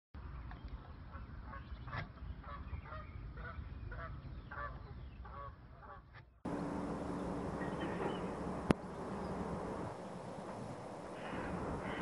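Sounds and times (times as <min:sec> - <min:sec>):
geese honking: 0:01.5 - 0:12.0.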